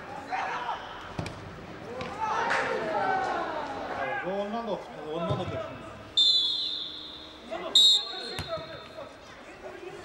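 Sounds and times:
referee's whistle: 6.2s - 9.0s.

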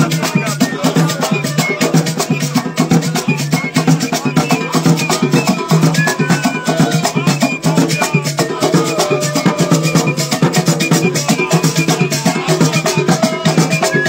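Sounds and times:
drum and percussion ensemble: 0.0s - 14.0s.

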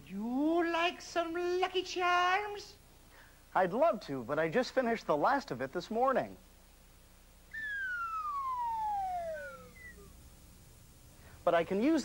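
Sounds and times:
falling slide whistle: 7.5s - 10.1s.

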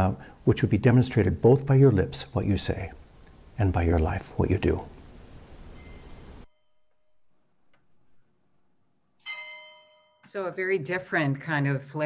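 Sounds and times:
bell ringing: 5.8s - 7.6s, 9.2s - 10.6s.

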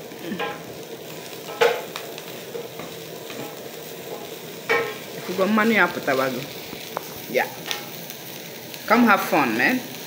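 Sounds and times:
insects sizzling in a pan: 0.0s - 10.0s.

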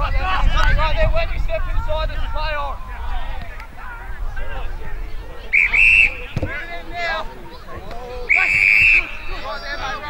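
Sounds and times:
players shouting: 0.0s - 10.0s
referee whistle blast: 5.5s - 6.4s, 8.3s - 9.3s.

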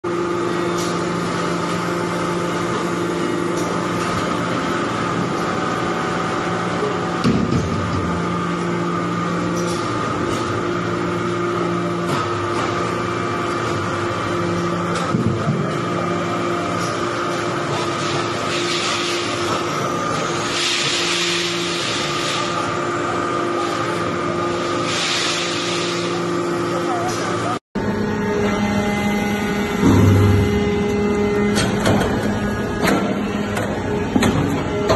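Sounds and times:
hydraulic press humming: 27.8s - 34.9s.

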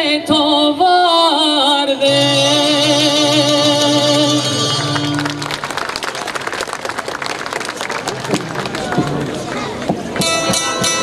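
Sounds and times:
audience applause: 4.7s - 9.9s.

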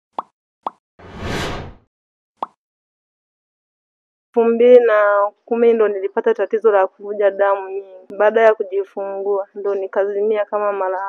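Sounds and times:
whoosh: 1.0s - 1.8s.

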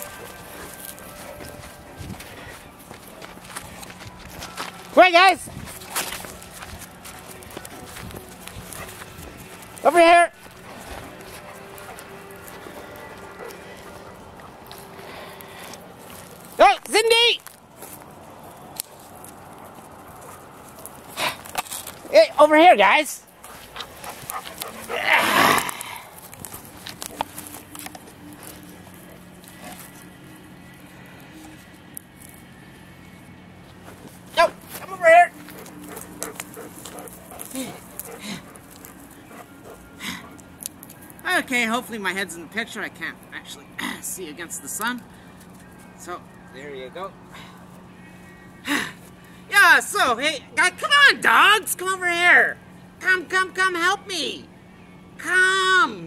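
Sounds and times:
footsteps crunching on dirt: 0.0s - 22.6s, 23.2s - 42.2s
man shouting to call dogs: 5.0s - 5.5s, 9.8s - 10.4s, 16.6s - 17.4s, 22.1s - 23.2s, 34.4s - 35.4s, 49.5s - 54.4s, 55.2s - 56.0s.

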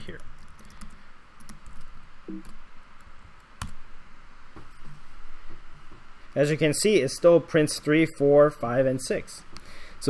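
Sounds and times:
computer keyboard typing: 0.0s - 3.8s.

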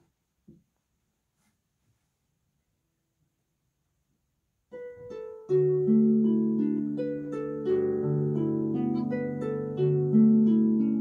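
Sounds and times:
harp plucked notes and chords: 4.8s - 11.0s.

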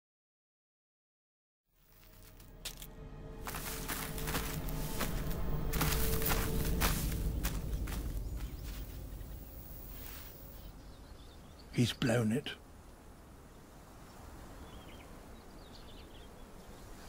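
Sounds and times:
background music: 2.0s - 10.4s.

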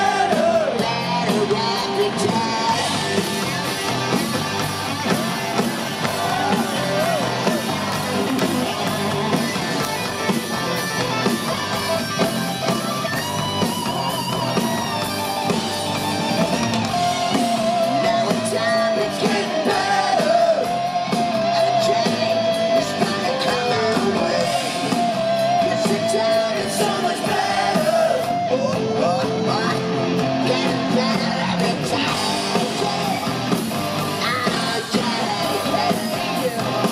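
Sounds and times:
hard rock band playing live: 0.0s - 36.9s
person singing: 17.0s - 33.3s.

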